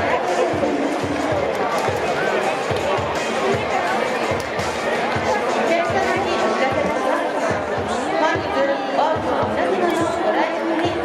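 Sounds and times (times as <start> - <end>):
crowd chattering and calling: 0.0 - 11.0.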